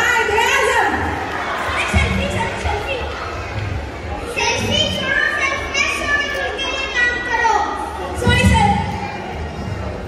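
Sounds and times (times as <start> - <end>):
children calling and talking: 0.0 - 10.0.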